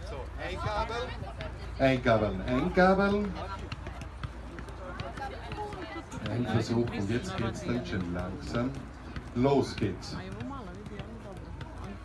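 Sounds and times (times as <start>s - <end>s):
light taps of footballs: 0.0s - 12.0s.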